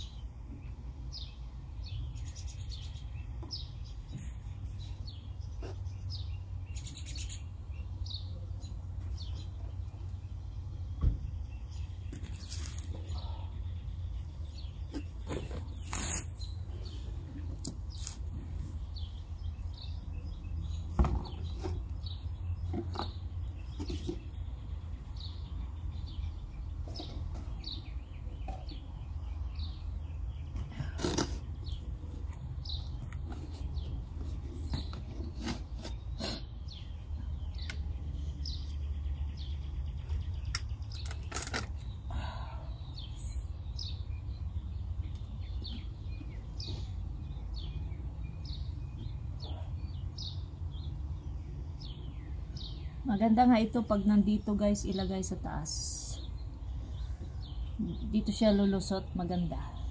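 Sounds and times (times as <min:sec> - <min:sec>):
bird chirps: 0:00.0 - 0:59.9.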